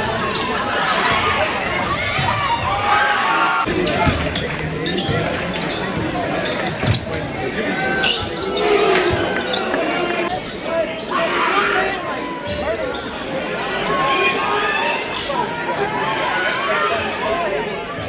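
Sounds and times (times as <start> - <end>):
echoing voices: 0.0 - 18.0.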